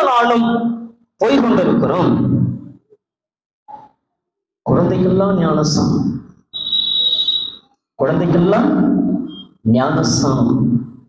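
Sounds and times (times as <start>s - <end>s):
high whistling feedback tone: 6.5s - 7.8s, 9.2s - 9.6s.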